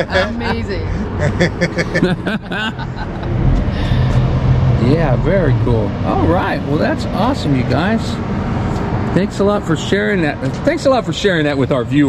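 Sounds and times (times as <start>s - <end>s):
people laughing: 0.0s - 3.9s
vehicle engine hum: 0.0s - 12.0s.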